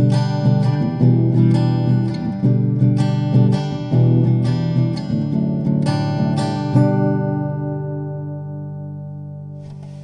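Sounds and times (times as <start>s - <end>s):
guitar chord ringing: 0.0s - 10.0s
guitar strumming: 0.0s - 10.0s.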